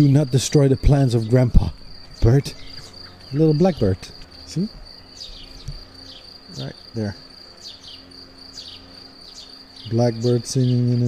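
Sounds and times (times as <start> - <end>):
blackbird chirping: 0.0 - 11.0
high insect trill: 0.0 - 11.0.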